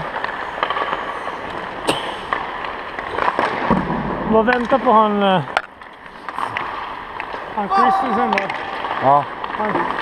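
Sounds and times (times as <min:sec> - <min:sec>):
hockey pucks cracking and clacking: 0:00.0 - 0:10.0.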